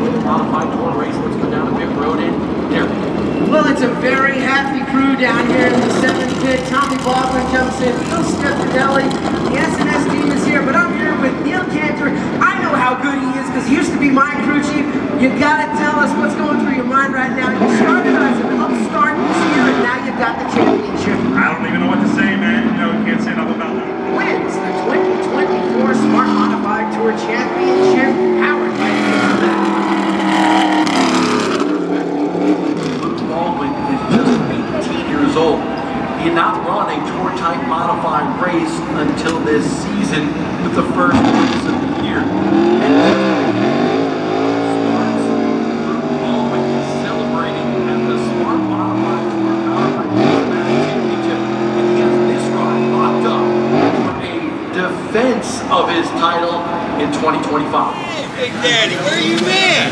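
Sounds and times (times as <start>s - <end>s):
race car engine passing: 0.0s - 59.9s
tires spinning: 0.0s - 59.9s.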